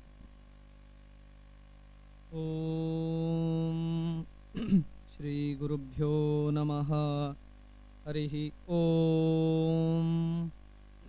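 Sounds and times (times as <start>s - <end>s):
man chanting a prayer: 2.3s - 4.3s, 5.1s - 7.4s, 8.1s - 10.6s.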